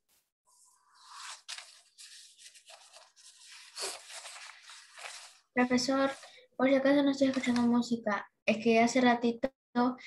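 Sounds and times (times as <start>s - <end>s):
scratchy rustling on microphone: 0.5s - 6.3s.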